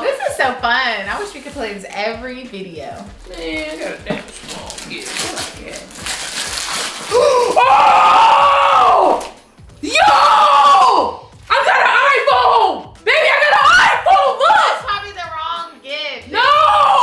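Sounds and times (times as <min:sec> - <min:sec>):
wrapping paper tearing: 0:01.1 - 0:02.0, 0:03.0 - 0:08.4
person screaming excitedly: 0:07.1 - 0:14.8, 0:16.3 - 0:17.0.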